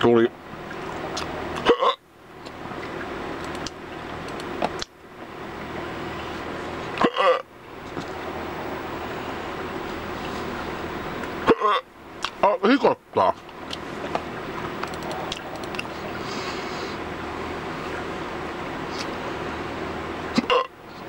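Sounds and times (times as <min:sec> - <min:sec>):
steady background hum: 0:00.0 - 0:21.0
man hiccuping: 0:01.6 - 0:02.0, 0:07.0 - 0:07.4, 0:11.4 - 0:11.9, 0:20.4 - 0:20.7.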